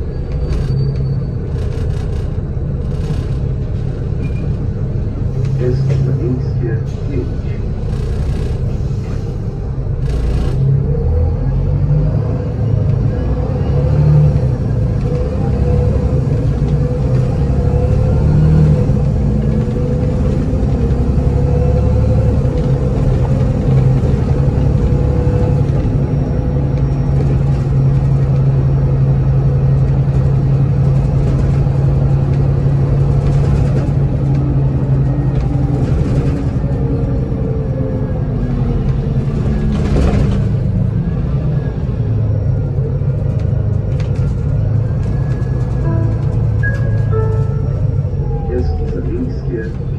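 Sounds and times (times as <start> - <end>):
bus diesel engine running: 0.0 - 49.9.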